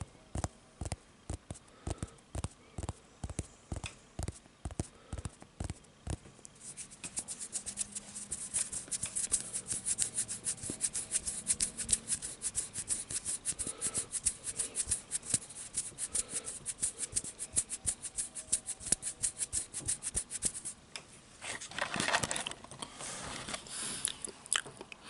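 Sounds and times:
fingertips scratching microphone: 0:00.4 - 0:20.8.

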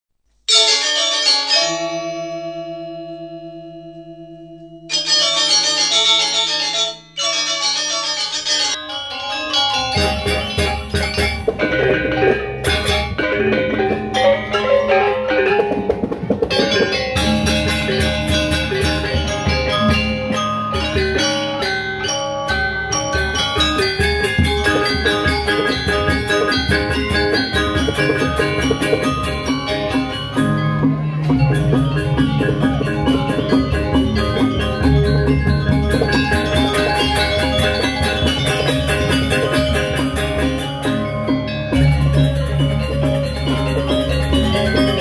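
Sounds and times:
metallophones playing: 0:00.5 - 0:45.0
hand drum beats: 0:09.9 - 0:21.7, 0:23.1 - 0:45.0
sustained ringing tones: 0:16.6 - 0:45.0.

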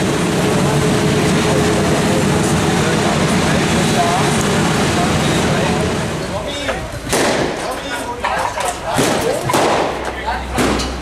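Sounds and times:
street-sweeping truck running: 0:00.0 - 0:08.9
people talking: 0:00.3 - 0:11.0.

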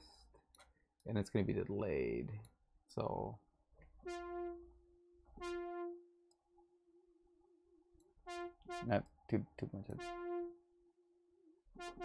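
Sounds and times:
synth lead notes: 0:04.0 - 0:06.4, 0:07.7 - 0:09.0, 0:09.9 - 0:12.0.

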